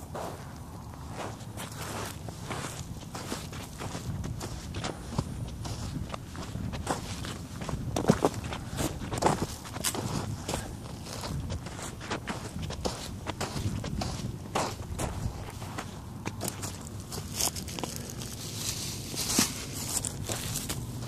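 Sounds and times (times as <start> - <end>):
footsteps walking outdoors: 0.0 - 21.0.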